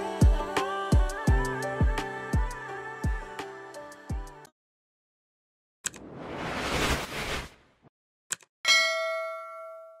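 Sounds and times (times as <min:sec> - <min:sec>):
notification bell ding: 0:08.7 - 0:10.0.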